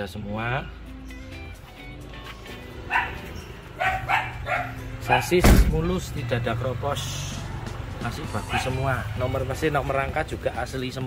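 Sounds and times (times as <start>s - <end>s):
background music: 0.0s - 11.0s
dog barking: 2.8s - 5.4s, 8.4s - 9.2s.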